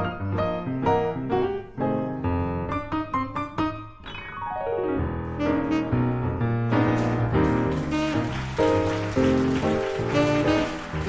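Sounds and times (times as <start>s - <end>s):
piano chords: 0.0s - 11.0s
breathy tenor saxophone: 5.4s - 6.5s, 7.7s - 11.0s.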